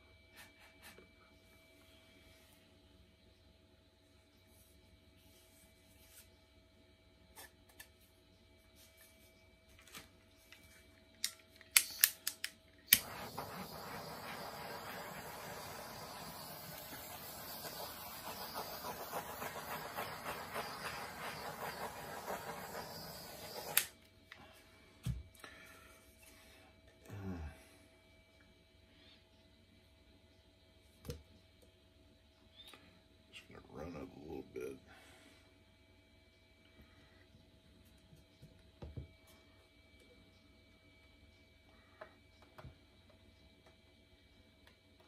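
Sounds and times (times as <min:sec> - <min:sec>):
hairdryer blowing: 0:12.9 - 0:23.9.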